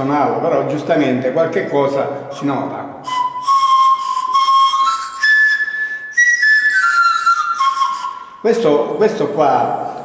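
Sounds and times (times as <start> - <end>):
breathy pan flute notes: 3.0 - 8.6.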